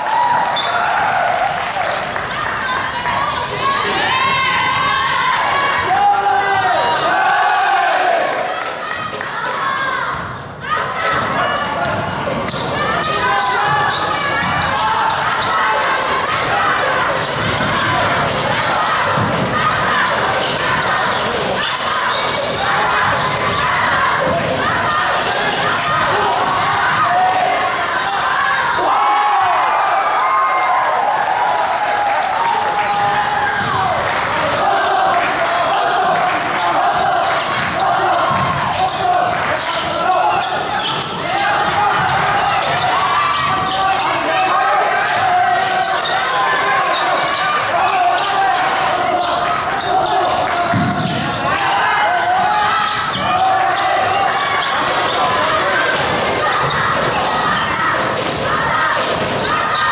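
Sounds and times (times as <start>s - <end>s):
people calling out: 0.0s - 59.9s.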